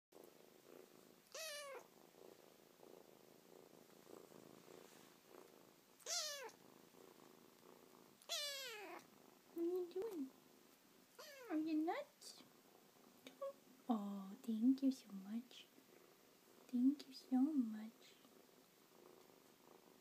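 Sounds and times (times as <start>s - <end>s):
kitten purring: 0.1s - 20.0s
kitten meowing: 1.3s - 1.8s, 6.0s - 6.6s, 8.2s - 9.0s, 11.2s - 11.6s.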